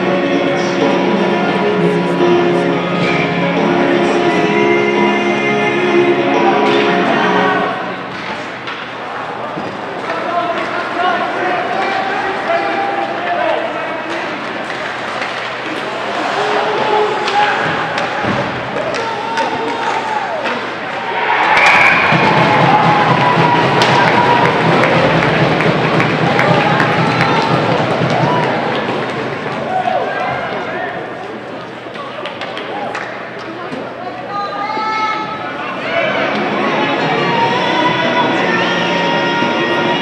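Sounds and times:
spectators talking: 0.0s - 40.0s
crowd cheering: 14.6s - 31.2s
pucks and sticks knocking: 22.0s - 29.0s.

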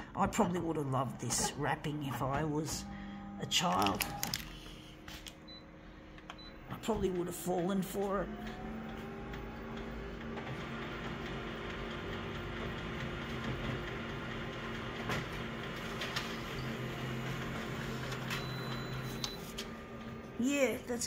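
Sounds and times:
copier whirring and humming: 0.0s - 21.0s.

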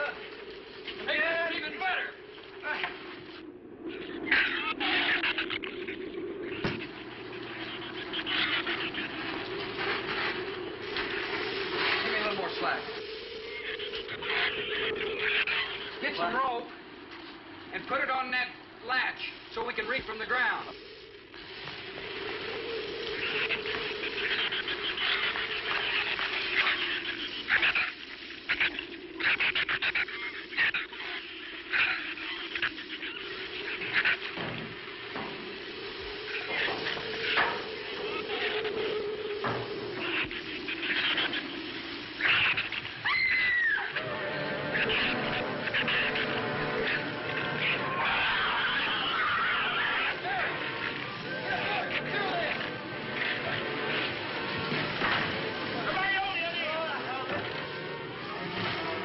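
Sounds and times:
howling storm wind: 0.0s - 59.0s
animal squeals: 3.8s - 18.4s, 19.0s - 59.0s
falling shriek: 19.7s - 57.2s
film music: 44.0s - 48.4s.

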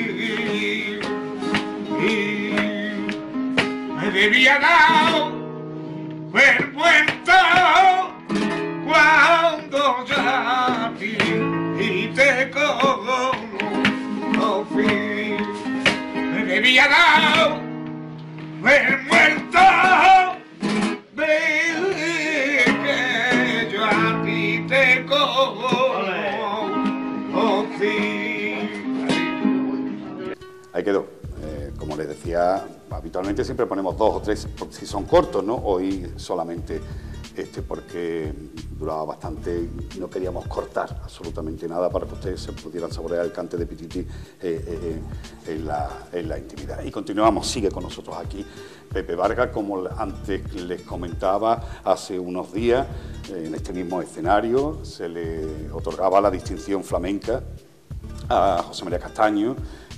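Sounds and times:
man singing flamenco: 0.0s - 5.4s, 6.3s - 17.7s, 18.6s - 29.5s, 31.2s - 57.3s
plucked flamenco guitar: 0.0s - 59.9s.

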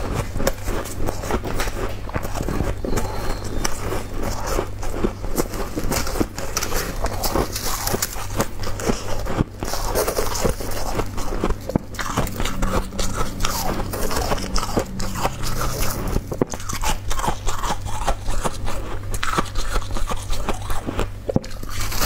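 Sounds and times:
ice being chewed and crunched: 0.0s - 22.0s.

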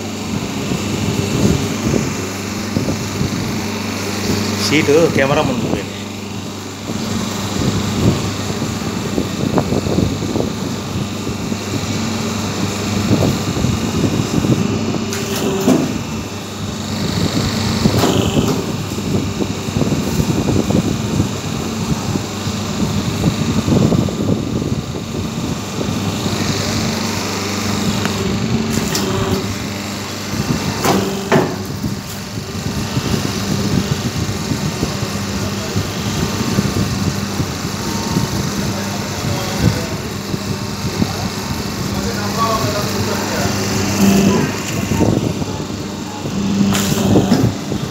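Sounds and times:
paper plate machine humming: 0.0s - 47.9s
machine dies knocking and clattering: 15.1s - 16.1s, 17.9s - 18.9s, 28.7s - 29.7s, 30.6s - 32.3s, 46.4s - 47.9s.

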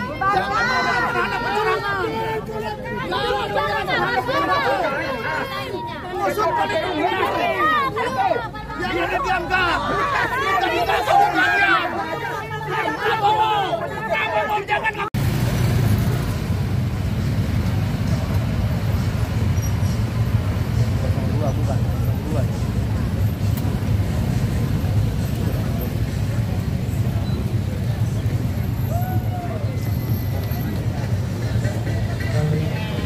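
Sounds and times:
crowd chatter: 0.0s - 15.2s, 18.0s - 33.0s
street traffic rumble: 0.0s - 33.0s.

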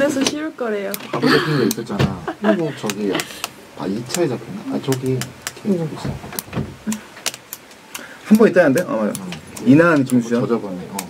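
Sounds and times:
low thump: 1.9s - 2.3s
small clicks and knocks: 4.0s - 11.0s.

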